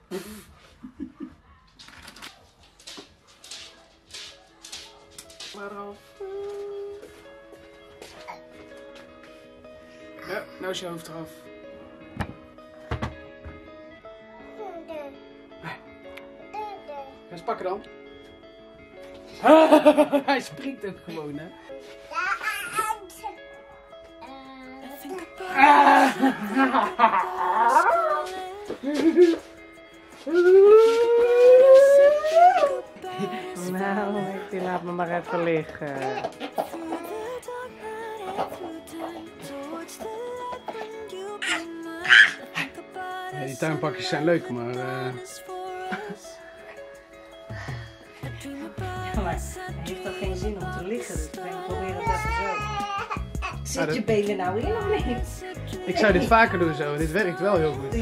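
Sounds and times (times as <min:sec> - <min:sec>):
quiet background music: 0:00.0 - 0:58.0
vocal sounds: 0:25.2 - 0:29.4
long rising cry: 0:30.3 - 0:32.9.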